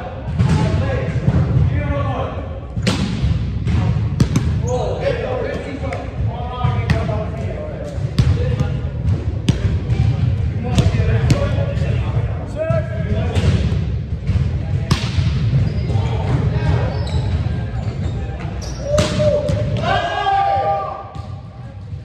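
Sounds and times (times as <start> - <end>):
players' voices echoing: 0.0 - 22.0.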